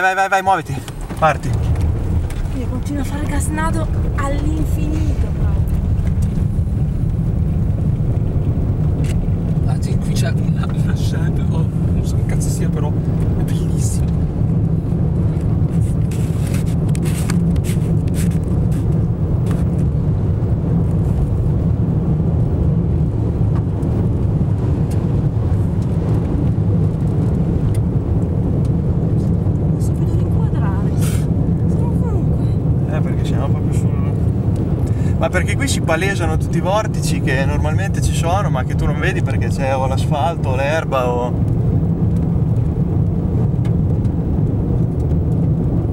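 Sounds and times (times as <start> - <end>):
car cabin road rumble: 0.0 - 45.9.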